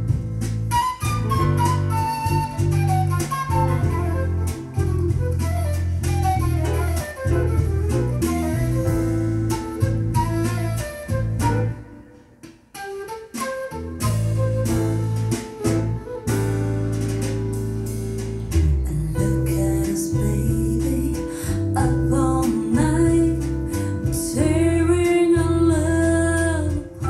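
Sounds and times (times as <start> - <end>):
bass line: 0.0 - 11.9, 13.8 - 27.0
guitar: 0.0 - 27.0
instrumental jazz-pop music: 0.0 - 27.0.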